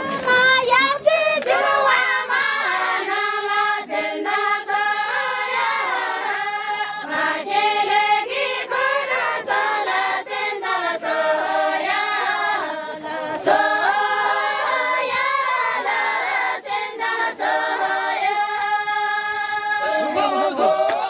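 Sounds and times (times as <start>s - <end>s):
women singing in unison: 0.0s - 21.0s.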